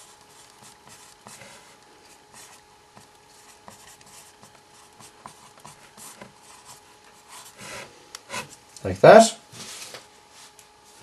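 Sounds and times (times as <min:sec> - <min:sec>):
marker pen scratching paper: 0:00.0 - 0:08.6.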